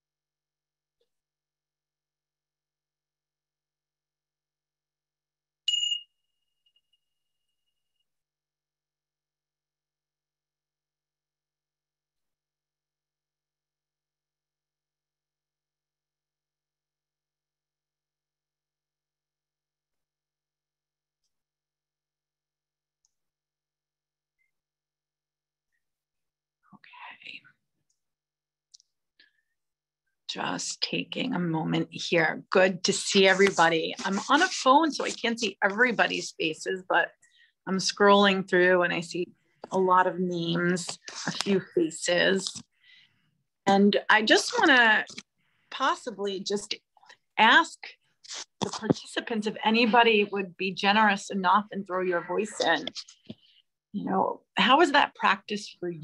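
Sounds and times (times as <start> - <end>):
soft whisper of a voice: 26.7 - 27.6.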